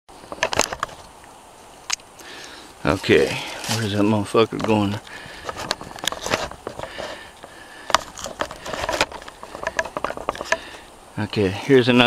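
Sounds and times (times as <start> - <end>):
steady low hiss: 0.1 - 12.0
sharp clicks and knocks: 4.5 - 10.8.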